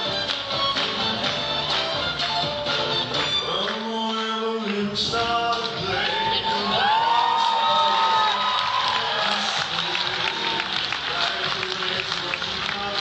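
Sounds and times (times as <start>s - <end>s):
audience cheering and clapping: 0.0s - 13.0s.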